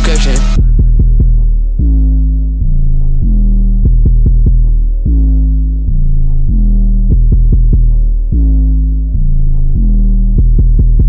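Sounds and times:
deep bass line: 0.0 - 11.0.

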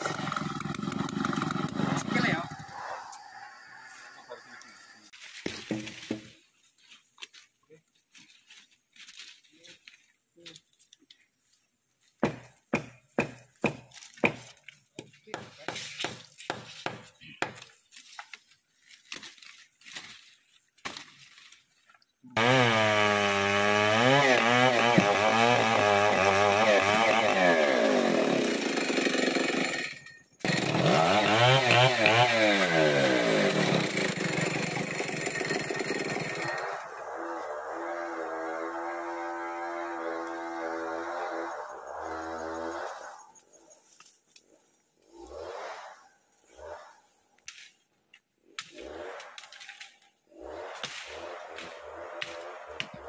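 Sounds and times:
chainsaw cutting log: 0.0 - 2.6, 12.2 - 14.5, 22.4 - 43.2, 45.0 - 47.6, 48.5 - 53.0.

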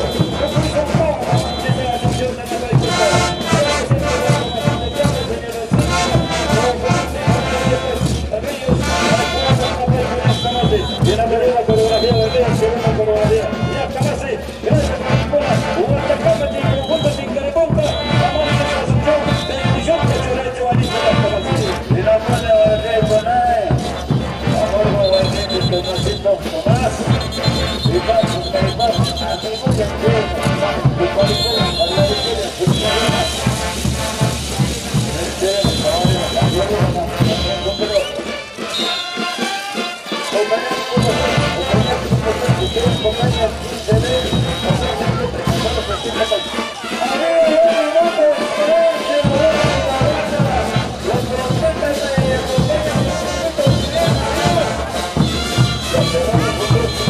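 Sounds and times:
steady drumbeat: 0.0 - 57.0
wind instruments playing melody: 0.0 - 57.0.

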